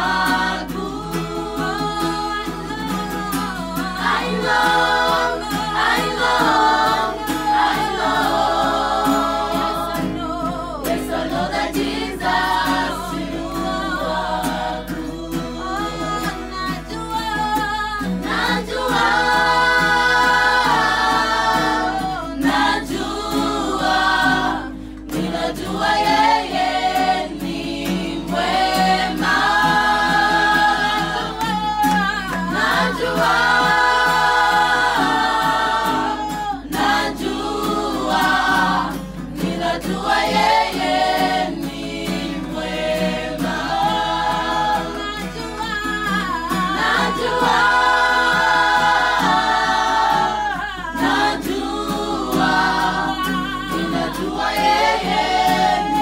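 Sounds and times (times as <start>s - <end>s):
women singing a cappella: 0.0s - 56.0s.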